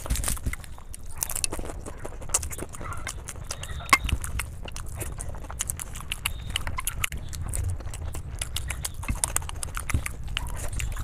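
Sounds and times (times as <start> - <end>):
person chewing with wet mouth sounds: 0.0 - 11.0.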